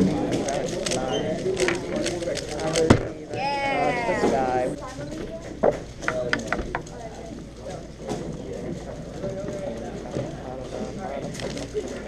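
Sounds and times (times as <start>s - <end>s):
chatter in room: 0.0s - 12.0s.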